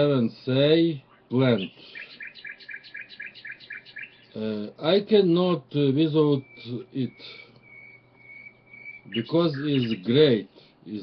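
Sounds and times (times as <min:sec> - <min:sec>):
bird chirping: 0:00.9 - 0:10.8.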